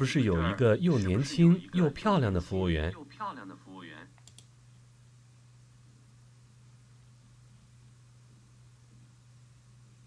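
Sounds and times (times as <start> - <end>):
person speaking: 0.0 - 4.2
low steady hum: 0.0 - 10.0
computer mouse clicks: 4.2 - 4.5.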